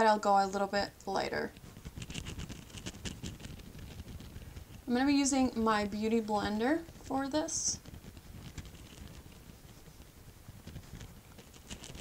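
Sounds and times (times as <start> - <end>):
low room hum: 0.0 - 12.0
damp sponge patting skin: 1.1 - 12.0.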